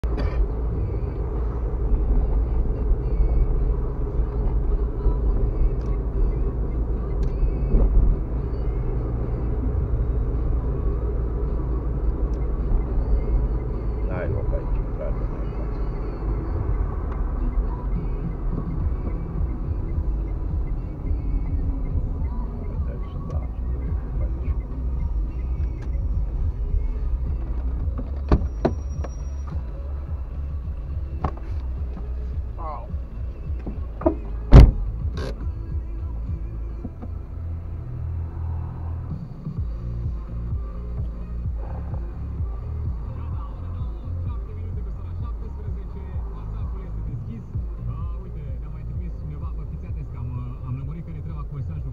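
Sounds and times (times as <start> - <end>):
car engine and tyre rumble: 0.0 - 51.9.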